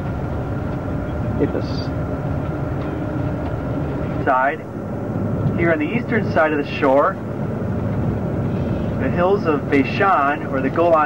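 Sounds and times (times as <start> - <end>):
bus engine and road noise: 0.0 - 11.0.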